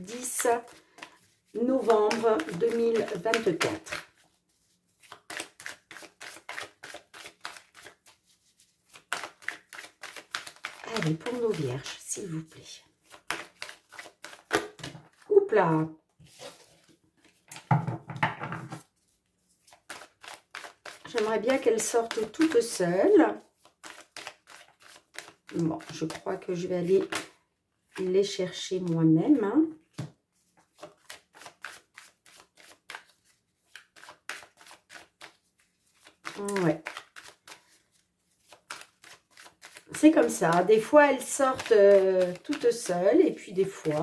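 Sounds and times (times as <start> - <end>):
cards rustling: 0.1 - 15.2, 18.9 - 22.8, 23.5 - 27.4, 30.0 - 44.0.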